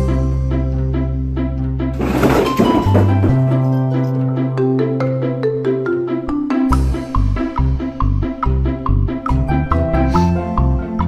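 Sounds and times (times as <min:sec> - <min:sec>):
upbeat background music: 0:00.0 - 0:11.0
rattling clatter of boxes: 0:02.0 - 0:03.8.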